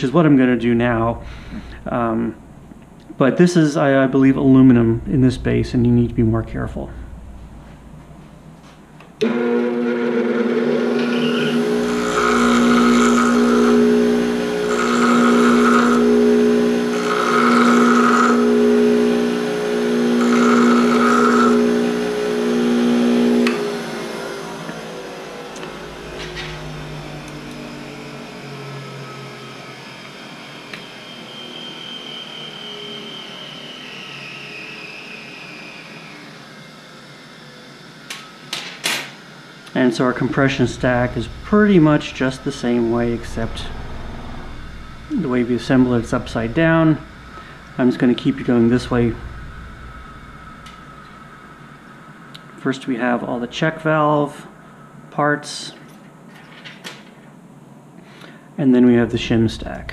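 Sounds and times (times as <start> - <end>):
bench grinder humming: 9.2 - 36.3, 38.0 - 52.5
grinder spinning down whine: 9.2 - 55.1
metal rod grinding on wheel: 11.0 - 23.5.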